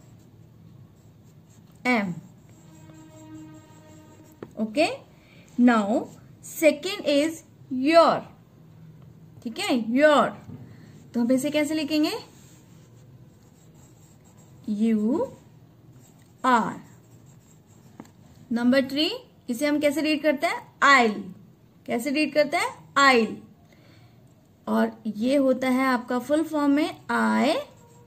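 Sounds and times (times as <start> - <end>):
pen scratching on paper: 0.0 - 5.0, 11.5 - 18.4, 26.9 - 28.0.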